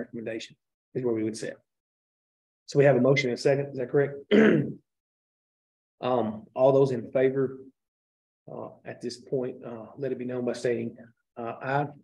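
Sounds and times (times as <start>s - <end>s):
person clearing throat: 4.3s - 4.8s.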